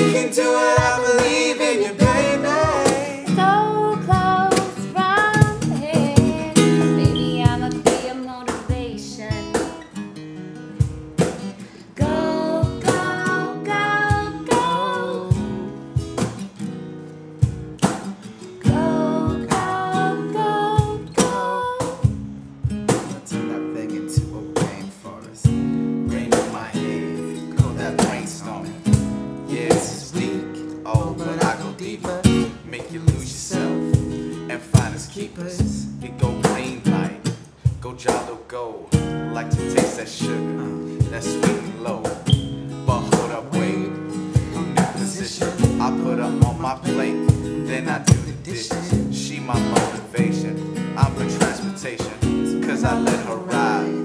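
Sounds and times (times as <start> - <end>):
cajon beat: 0.0 - 23.4, 24.0 - 54.0
acoustic guitar strumming: 0.0 - 54.0.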